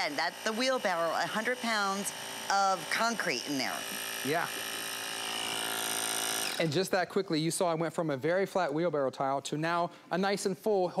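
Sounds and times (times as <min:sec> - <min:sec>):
air compressor running: 0:00.0 - 0:07.0.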